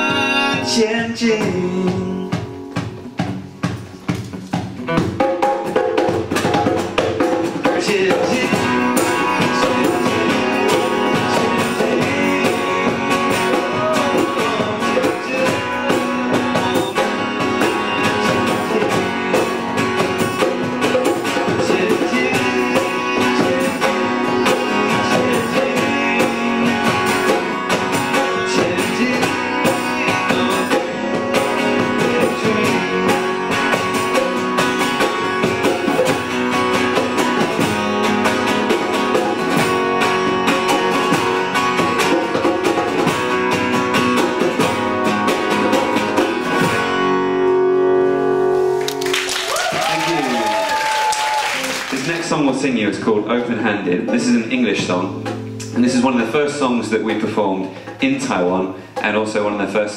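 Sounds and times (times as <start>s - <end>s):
acoustic guitars strummed: 0.0s - 49.4s, 50.3s - 59.8s.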